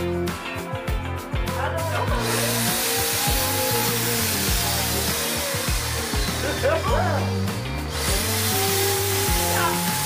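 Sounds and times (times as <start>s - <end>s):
paint sprayer turbine rushing air: 2.0s - 10.0s.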